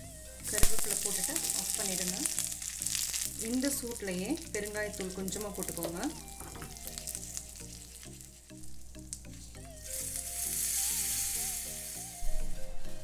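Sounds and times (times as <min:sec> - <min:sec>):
seeds sizzling in hot oil: 0:00.0 - 0:12.4
rhythmic background music: 0:00.0 - 0:13.0.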